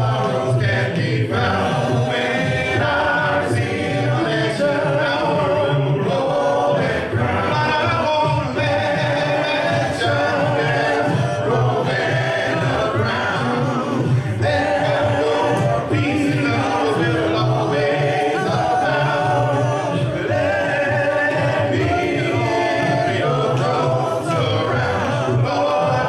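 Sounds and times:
men singing a cappella harmony: 0:00.0 - 0:26.0.

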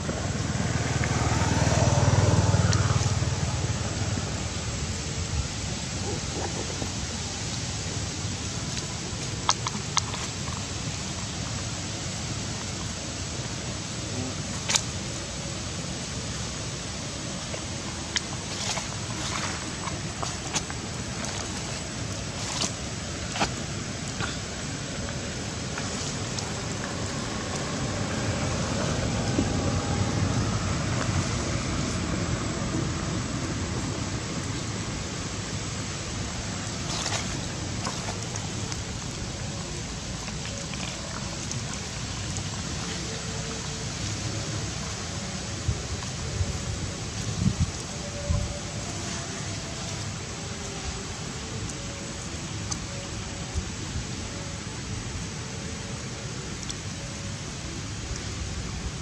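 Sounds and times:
wind on microphone: 0:17.1 - 0:40.0, 0:40.9 - 0:55.2.

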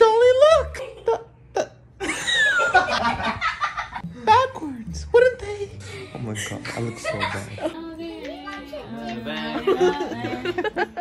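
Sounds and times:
people laughing: 0:02.0 - 0:04.0, 0:06.2 - 0:07.9, 0:08.8 - 0:11.0.

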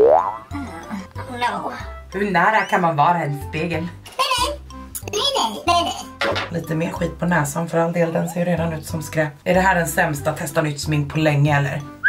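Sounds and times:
cartoon rising boing: 0:00.0 - 0:00.6
background music with bass line: 0:00.0 - 0:07.6.

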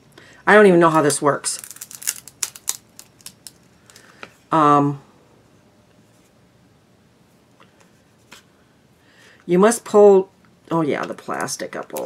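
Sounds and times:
plastic packaging clicking: 0:01.0 - 0:04.0.

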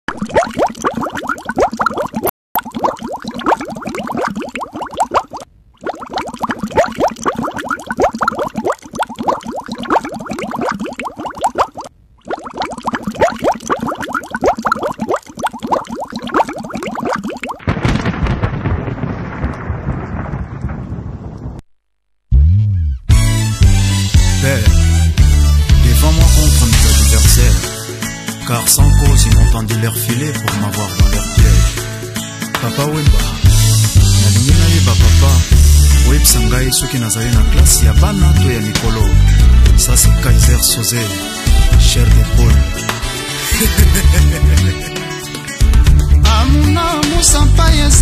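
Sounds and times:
dense crackling noise: 0:17.5 - 0:22.3.

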